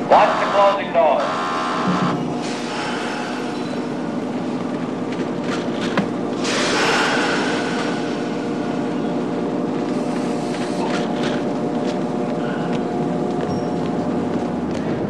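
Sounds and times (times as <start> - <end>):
subway train motor hum: 0.0 - 15.0
loud air hiss: 2.0 - 4.1, 6.4 - 9.2.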